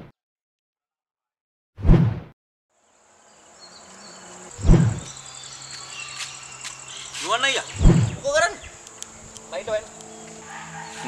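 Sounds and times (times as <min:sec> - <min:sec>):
outdoor ambience: 0:02.7 - 0:11.0
high-pitched insect drone: 0:02.8 - 0:11.0
deep thud: 0:07.8 - 0:08.2.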